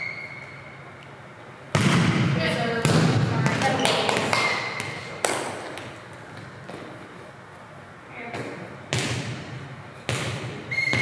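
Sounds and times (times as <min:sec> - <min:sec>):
volleyball thudding on floor: 0:01.7 - 0:05.9.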